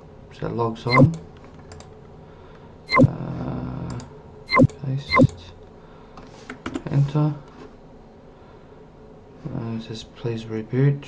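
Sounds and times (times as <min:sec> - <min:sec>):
mouse click: 0:00.9 - 0:01.2, 0:04.5 - 0:05.4.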